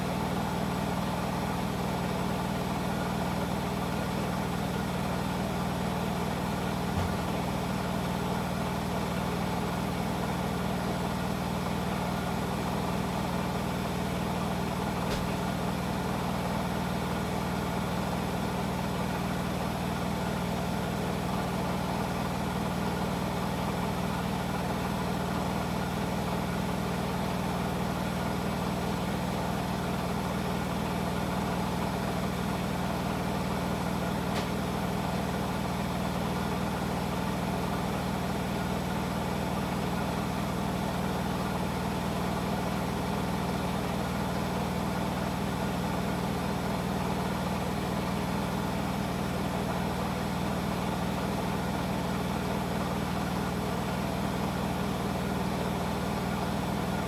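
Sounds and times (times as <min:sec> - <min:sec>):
washing machines spinning: 0:00.1 - 0:57.0.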